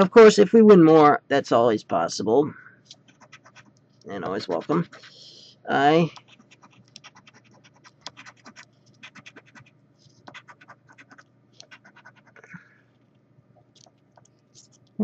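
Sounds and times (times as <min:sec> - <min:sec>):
coin scratching a lottery ticket: 0:03.0 - 0:05.4, 0:06.1 - 0:12.5.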